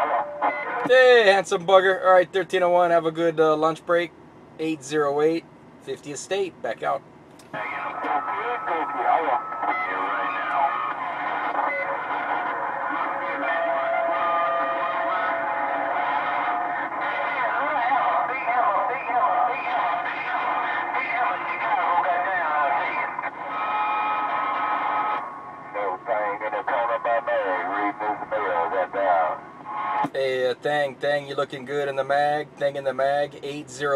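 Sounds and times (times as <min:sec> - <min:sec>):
garbled radio voices: 0:05.9 - 0:33.9.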